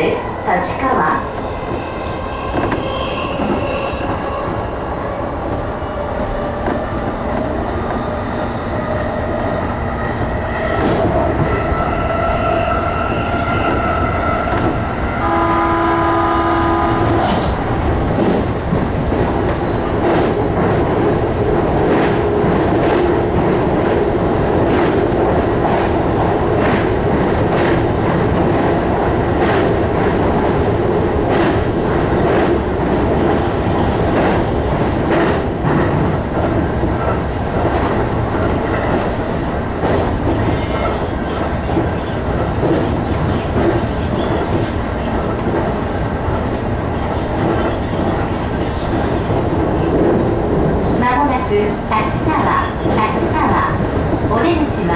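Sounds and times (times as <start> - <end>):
train horn: 15.2 - 17.4.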